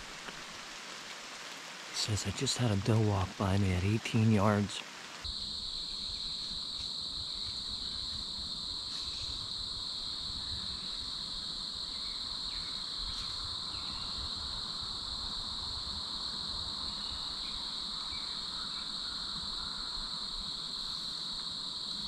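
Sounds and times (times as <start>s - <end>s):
crickets trilling: 0.0s - 22.0s.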